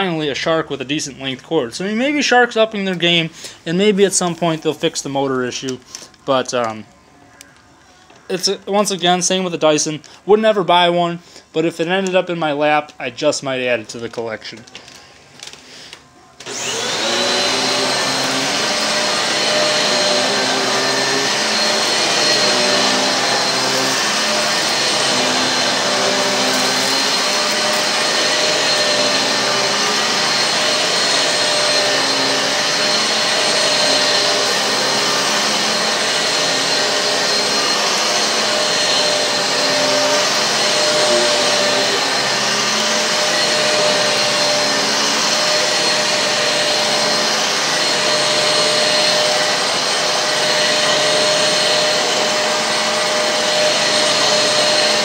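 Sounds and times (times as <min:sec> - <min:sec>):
vacuum cleaner motor whining: 0:16.3 - 0:55.0.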